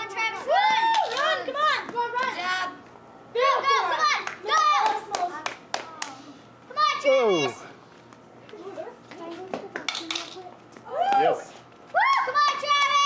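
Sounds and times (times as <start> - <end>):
sharp claps: 4.2 - 6.2
children shouting: 11.9 - 13.0.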